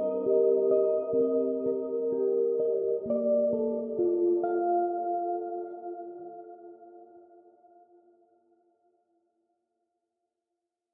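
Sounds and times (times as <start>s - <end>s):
electric guitar chord ringing: 0.0s - 7.5s.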